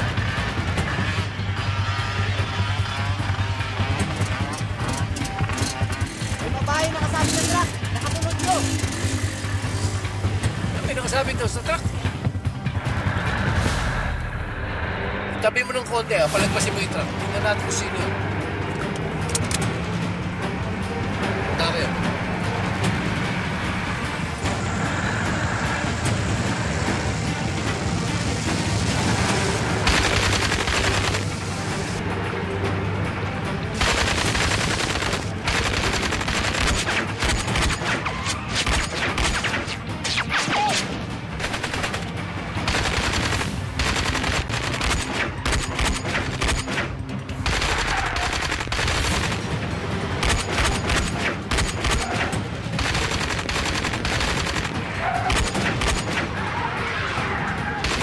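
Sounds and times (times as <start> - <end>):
background music: 0.0 - 58.0
automatic rifle gunfire: 42.7 - 46.7, 47.5 - 49.5, 52.8 - 56.1.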